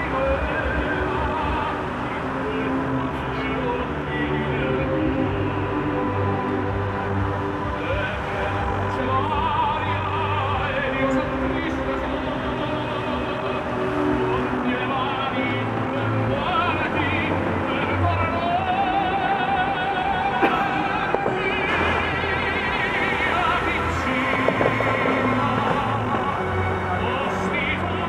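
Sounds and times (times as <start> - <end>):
fountain water jets spraying: 0.0 - 28.0
operatic singing with orchestra: 0.0 - 28.0.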